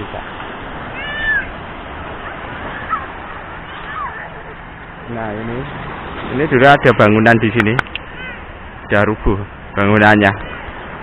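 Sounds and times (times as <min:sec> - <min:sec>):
surf: 0:00.0 - 0:11.0
wind: 0:00.0 - 0:11.0.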